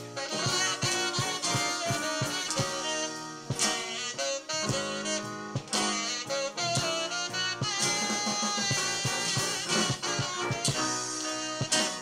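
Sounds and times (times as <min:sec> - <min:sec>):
drum beat: 0:00.0 - 0:12.0
folk band playing: 0:00.0 - 0:12.0.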